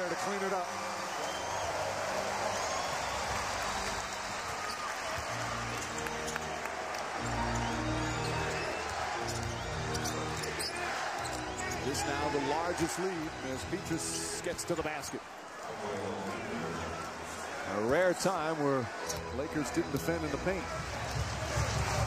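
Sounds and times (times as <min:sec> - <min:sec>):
crowd roar: 0:00.0 - 0:14.0
sneakers squeaking on hardwood: 0:07.5 - 0:11.8.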